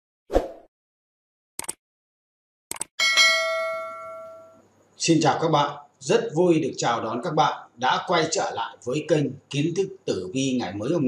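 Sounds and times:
notification bell ding: 3.0s - 4.6s.

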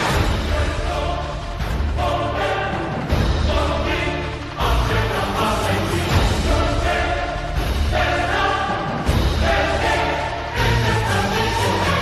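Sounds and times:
choir singing long held notes: 0.0s - 12.0s
steady low accompaniment: 0.0s - 12.0s.

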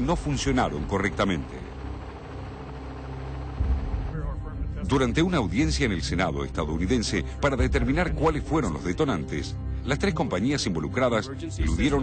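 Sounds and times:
aircraft engine drone: 0.0s - 9.9s.

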